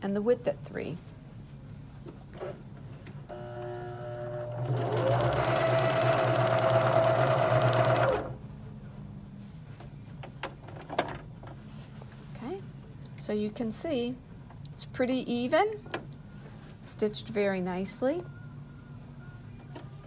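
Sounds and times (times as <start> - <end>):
sewing machine sewing: 4.2 - 8.4.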